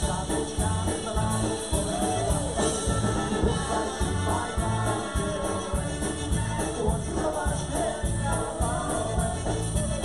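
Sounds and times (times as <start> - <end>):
polka band playing: 0.0 - 10.0
steady bass beat: 0.0 - 10.0.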